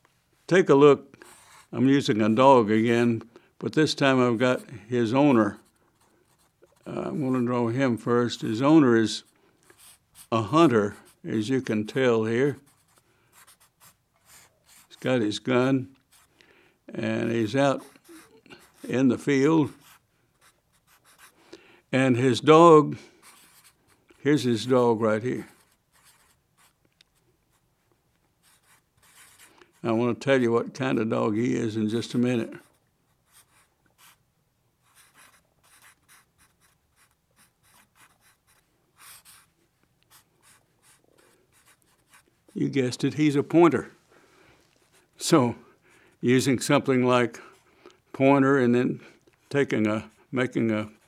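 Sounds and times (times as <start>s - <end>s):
marker drawing on paper: 1.2s - 2.4s, 4.3s - 7.8s, 9.2s - 15.2s, 17.2s - 21.4s, 23.2s - 24.6s, 25.4s - 26.8s, 28.4s - 30.0s, 32.0s - 34.2s, 34.8s - 39.5s, 40.1s - 42.6s.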